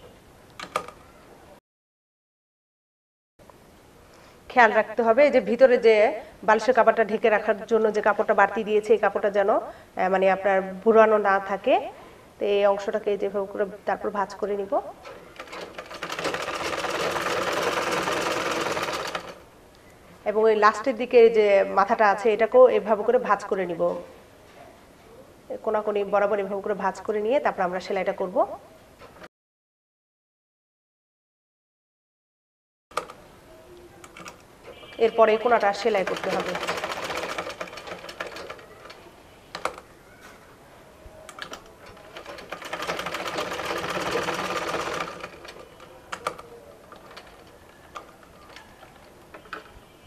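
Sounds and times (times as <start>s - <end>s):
sewing machine stitching: 15.0s - 19.4s, 34.1s - 39.8s, 41.4s - 49.9s.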